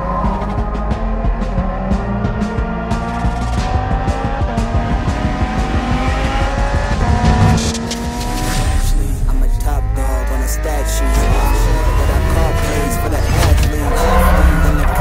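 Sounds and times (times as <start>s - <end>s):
background music: 0.0s - 15.0s
car engine revving: 0.0s - 15.0s.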